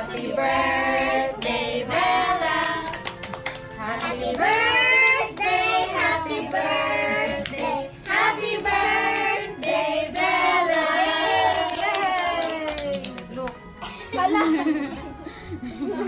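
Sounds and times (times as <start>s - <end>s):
hand claps: 1.9s - 6.6s, 7.4s - 13.6s
high voices singing together: 3.8s - 11.7s.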